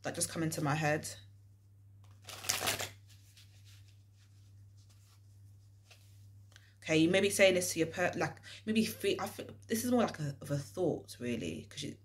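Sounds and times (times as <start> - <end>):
cards being shuffled by hand: 2.0 - 5.2.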